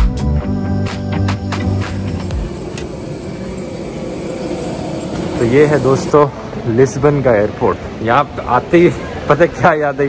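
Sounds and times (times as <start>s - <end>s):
high jet whine: 0.4s - 9.7s
jet engine rushing hum: 1.2s - 8.0s.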